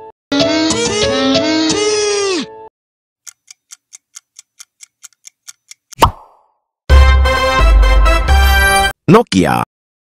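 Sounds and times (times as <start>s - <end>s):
clock ticking quickly: 3.2s - 6.0s
music: 6.9s - 8.9s.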